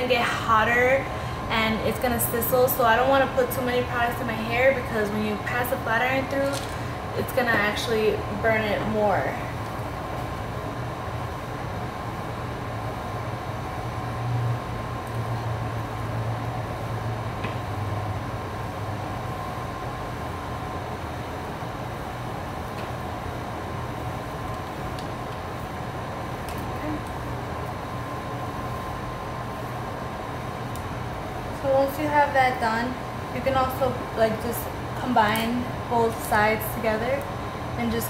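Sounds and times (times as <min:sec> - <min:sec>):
air conditioner humming: 0:00.0 - 0:38.0.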